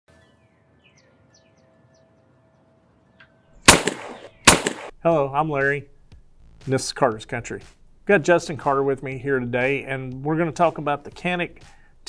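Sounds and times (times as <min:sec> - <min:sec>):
gunshot: 0:03.7 - 0:04.9.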